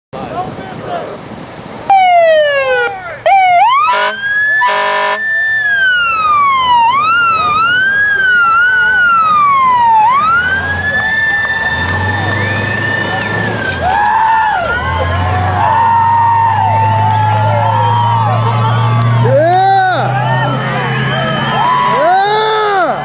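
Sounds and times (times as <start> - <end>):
fire engine siren wailing: 1.9 - 23.0
air horn blasts: 3.8 - 5.3.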